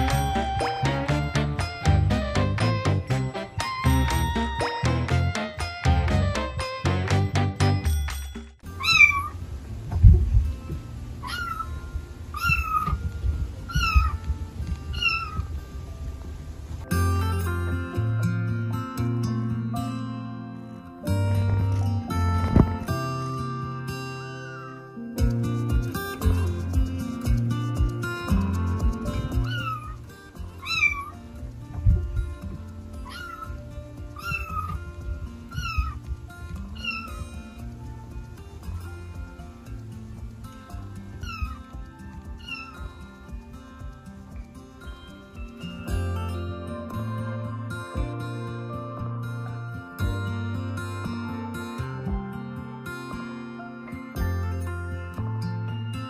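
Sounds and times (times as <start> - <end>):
plucked background music: 0.0 - 9.4, 16.8 - 56.0
cat meowing: 8.8 - 9.3, 11.2 - 11.7, 12.4 - 13.0, 13.7 - 14.2, 14.9 - 15.4, 29.4 - 29.9, 30.6 - 31.2, 33.0 - 33.5, 34.2 - 34.8, 35.5 - 36.0, 36.8 - 37.1, 41.2 - 41.6, 42.4 - 42.8.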